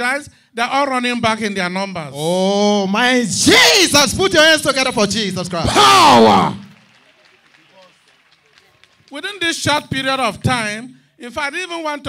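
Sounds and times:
faint crowd voices: 6.5s - 9.2s.

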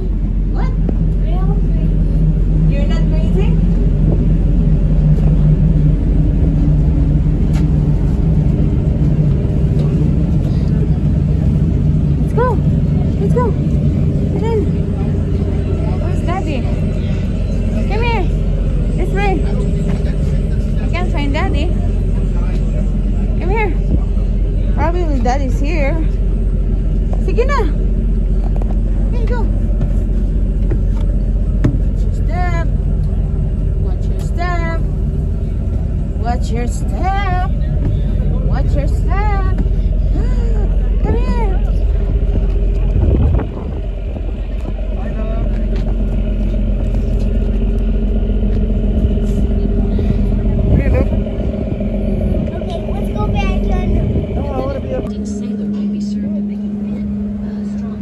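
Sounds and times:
boat engine rumble: 0.0s - 58.0s
steady hum: 0.0s - 58.0s
wind buffeting microphone: 0.0s - 58.0s.

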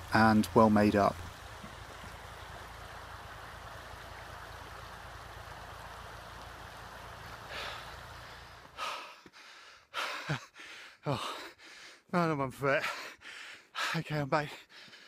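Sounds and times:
stream rushing over rocks: 0.0s - 9.0s
man breathing heavily: 7.4s - 12.1s, 12.8s - 15.0s.

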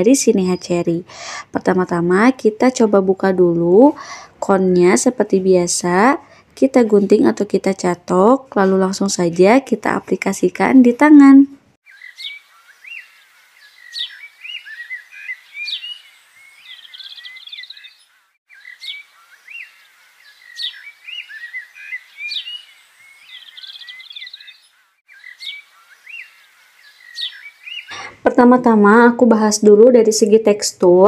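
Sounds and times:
birds chirping and trilling: 0.0s - 11.0s, 11.8s - 30.5s.

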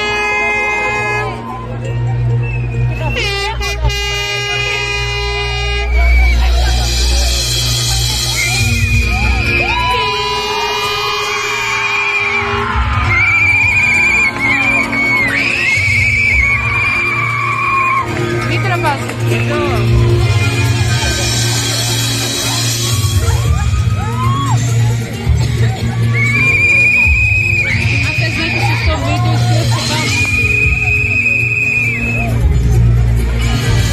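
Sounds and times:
deep bass drone: 0.0s - 33.9s
audience screaming: 5.6s - 32.6s.

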